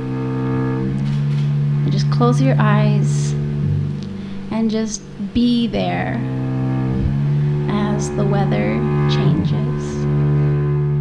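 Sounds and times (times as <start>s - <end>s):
cello bowing low note: 0.0s - 11.0s
person speaking: 1.9s - 3.4s, 4.5s - 6.3s, 7.6s - 10.1s.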